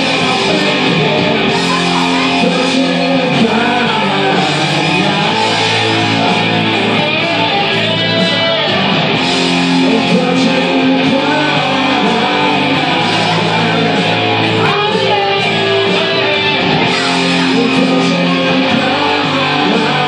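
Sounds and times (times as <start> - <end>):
electric guitar solo: 0.0 - 20.0.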